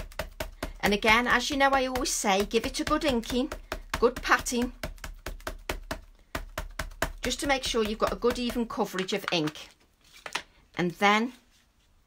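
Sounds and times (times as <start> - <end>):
ink pad tapping on stamp: 0.0 - 9.6.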